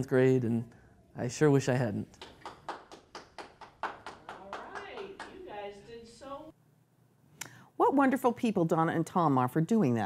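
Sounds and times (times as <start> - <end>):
scattered applause: 2.2 - 5.5.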